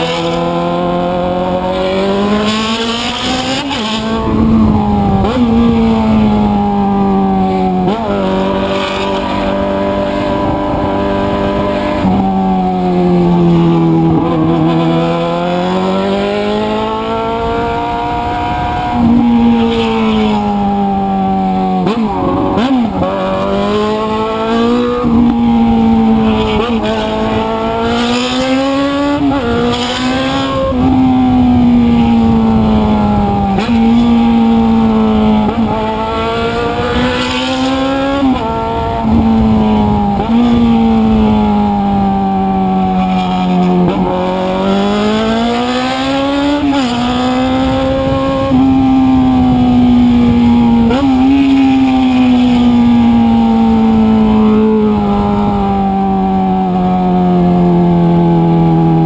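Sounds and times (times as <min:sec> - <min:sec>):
motorcycle engine revving: 0:00.0 - 0:59.0
wind rush: 0:03.2 - 0:08.3, 0:28.6 - 0:55.9.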